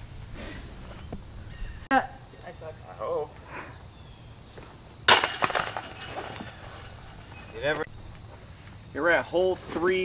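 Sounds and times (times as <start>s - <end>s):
disc hitting metal chains: 5.1s - 7.6s.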